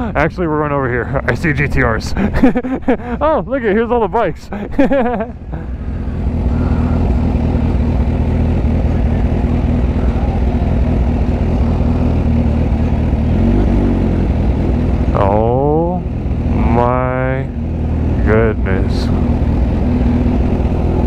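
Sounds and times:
motorcycle engine at low revs: 0.0s - 21.0s.

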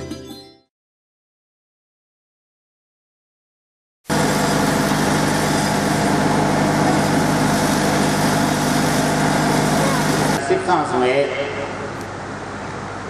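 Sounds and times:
loud machine hum: 4.1s - 13.0s.

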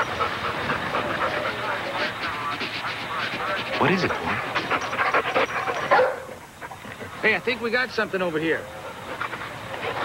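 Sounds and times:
dog barking: 5.7s - 6.4s.

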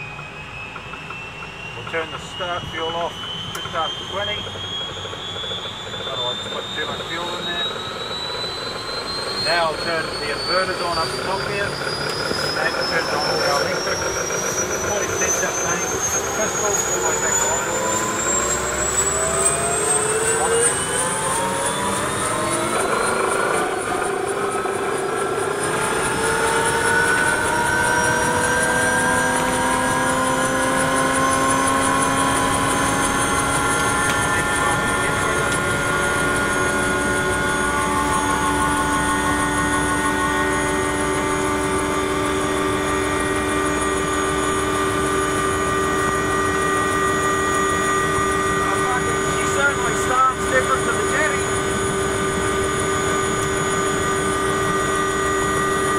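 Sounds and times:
helicopter rotor spooling up: 0.0s - 55.9s
turbine engine whine: 0.0s - 55.9s.

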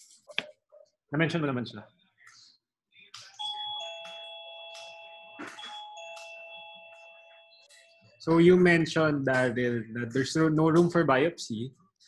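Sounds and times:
doorbell ding-dong chime: 3.4s - 7.7s.

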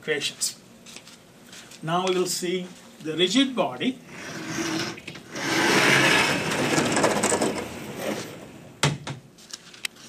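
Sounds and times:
sliding panel rolling along track: 4.1s - 8.8s.

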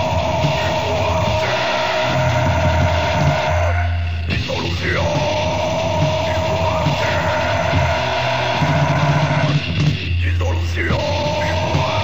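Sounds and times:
distorted metal guitars and bass: 0.0s - 12.0s.

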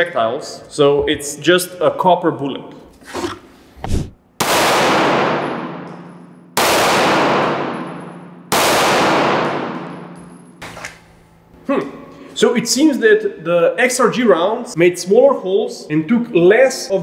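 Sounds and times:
pistol shots with echo: 4.4s - 10.5s.

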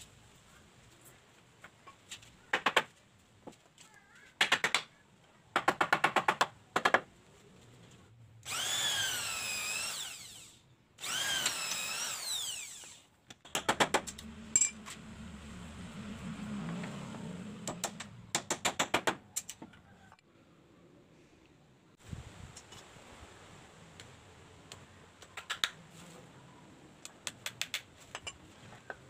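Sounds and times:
electric drill boring into wood: 8.4s - 13.1s.

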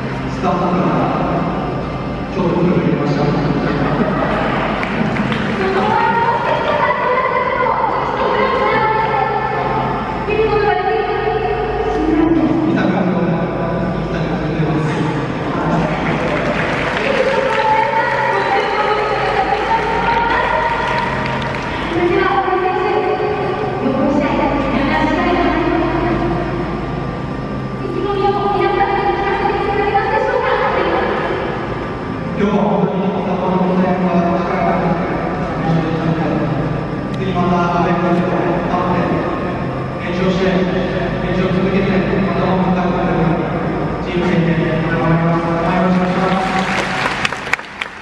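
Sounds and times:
echoing stadium murmur: 0.0s - 48.0s
speech: 5.5s - 16.4s, 17.0s - 21.0s, 27.8s - 31.5s, 40.0s - 46.7s.

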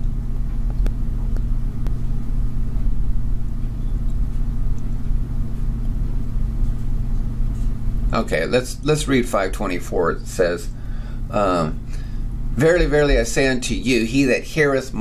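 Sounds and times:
low-pitched hum: 0.0s - 15.0s.

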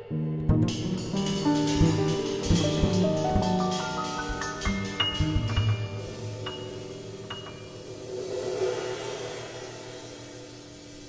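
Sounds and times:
double bass notes: 0.0s - 7.9s
piano notes: 0.0s - 11.0s
cymbal swell: 0.7s - 11.0s.

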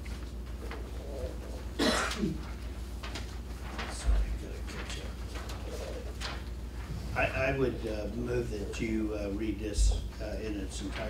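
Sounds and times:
paper rustling: 0.0s - 11.0s
room hum: 0.0s - 11.0s.

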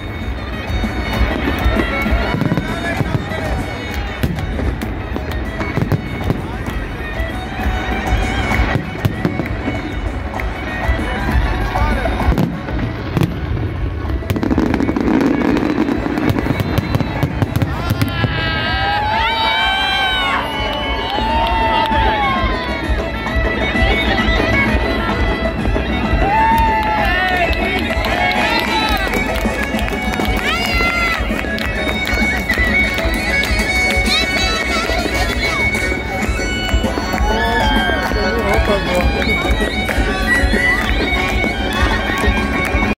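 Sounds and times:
crowd shouting and cheering: 0.0s - 42.9s
fireworks bangs and crackles: 0.0s - 42.9s
whoops and whistles: 36.3s - 38.3s.

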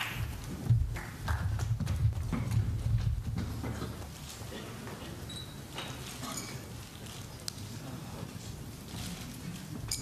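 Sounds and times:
low knocks and thuds on microphone: 0.6s - 4.0s.

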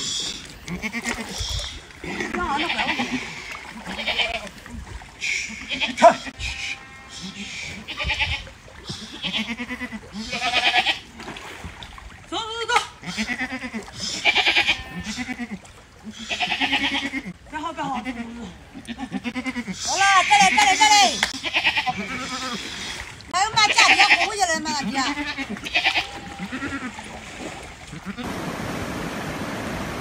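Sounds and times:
goats bleating: 0.7s - 1.4s, 2.0s - 4.6s, 5.5s - 11.1s, 13.0s - 22.7s, 23.3s - 27.1s, 27.9s - 28.3s.

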